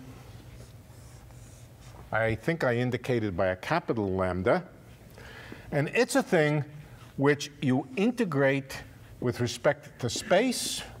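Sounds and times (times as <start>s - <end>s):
low steady room hum: 0.0s - 11.0s
chalk scratching on blackboard: 0.6s - 2.0s.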